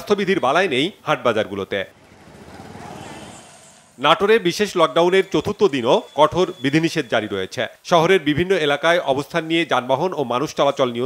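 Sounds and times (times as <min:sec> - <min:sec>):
road noise: 0:01.2 - 0:07.2
vehicle engine passing: 0:01.6 - 0:04.4.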